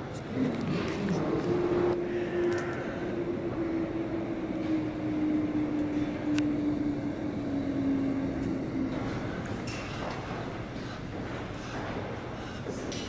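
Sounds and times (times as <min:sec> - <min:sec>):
low mechanical drone: 0:00.0 - 0:13.0
background rumble: 0:00.3 - 0:11.5.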